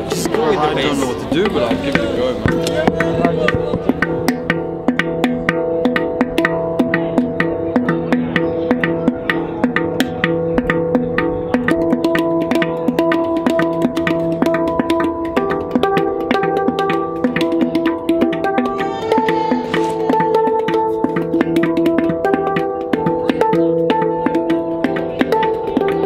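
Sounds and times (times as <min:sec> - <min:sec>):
handpan played by hand: 0:00.0 - 0:26.0.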